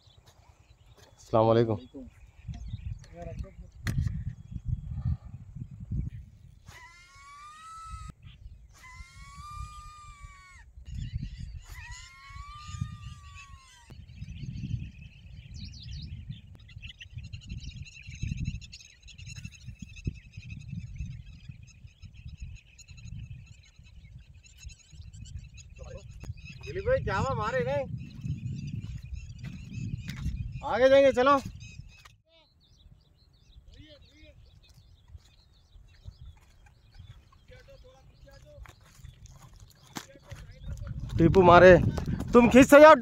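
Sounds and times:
small birds chirping: 0.0 - 43.0
wind buffeting microphone: 0.0 - 43.0.

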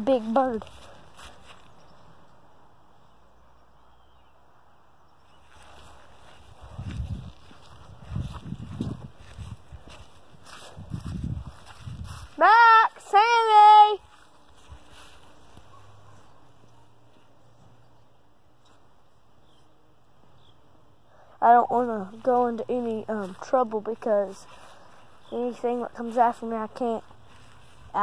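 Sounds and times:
walking footsteps: 0.0 - 1.9, 5.4 - 17.8, 22.0 - 28.0
person calling out: 12.3 - 14.0.

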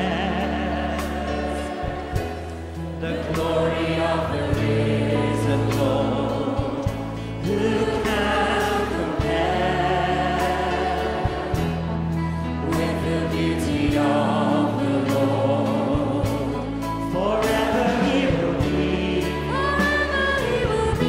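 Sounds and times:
group singing worship song: 0.0 - 21.0
held bass notes: 0.0 - 21.0
instrumental backing: 0.0 - 21.0.

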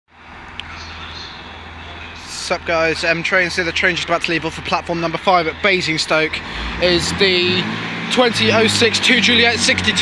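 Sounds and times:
diesel train engines idling: 0.2 - 10.0.

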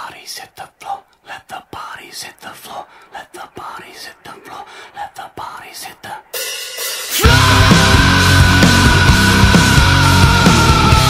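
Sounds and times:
person whispering: 0.0 - 6.4.

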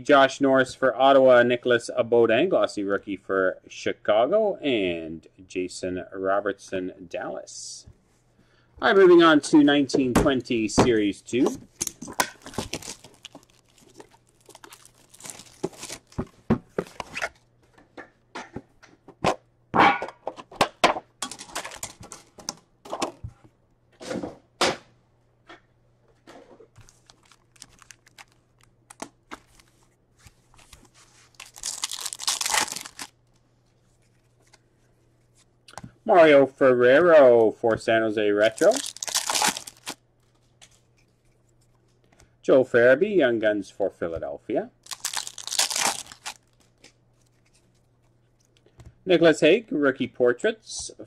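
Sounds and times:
plastic wrapping crinkling and tearing: 11.7 - 16.3, 26.8 - 33.2, 38.4 - 41.3, 44.8 - 48.6.

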